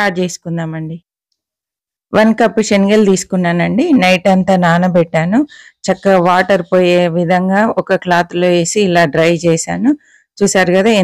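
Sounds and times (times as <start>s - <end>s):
woman speaking: 0.0s - 1.1s, 2.1s - 11.0s.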